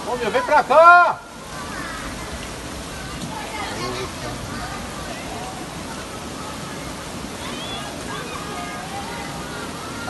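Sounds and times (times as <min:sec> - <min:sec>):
heavy rain: 0:00.0 - 0:10.0.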